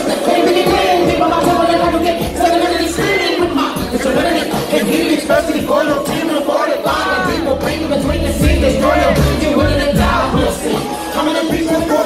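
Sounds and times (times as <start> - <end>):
live hip-hop music: 0.0 - 12.0.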